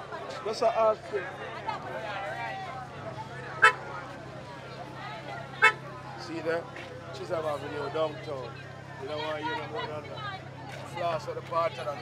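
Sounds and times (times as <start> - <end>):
faint crowd chatter: 0.0 - 12.0
car horn toot: 3.6 - 3.8, 5.6 - 5.9.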